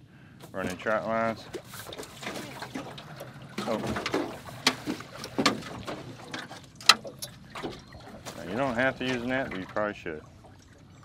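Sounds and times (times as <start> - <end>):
water splashing: 0.6 - 11.0.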